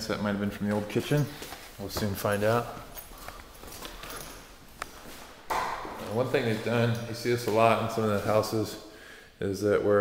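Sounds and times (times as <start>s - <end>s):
person speaking: 0.0s - 4.3s, 5.5s - 10.0s.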